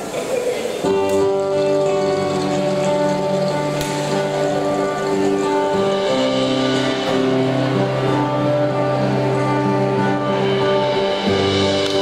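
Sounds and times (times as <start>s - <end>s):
live band music: 0.7s - 12.0s.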